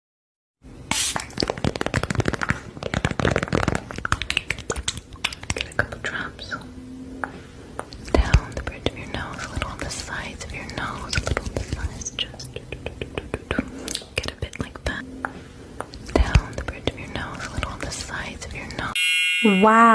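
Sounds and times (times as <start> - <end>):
person whispering: 5.6 - 6.7, 8.1 - 15.0, 16.0 - 19.0.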